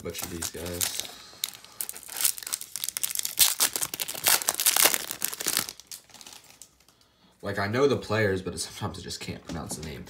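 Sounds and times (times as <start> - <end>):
foil wrapper tearing and crinkling: 0.0 - 6.8.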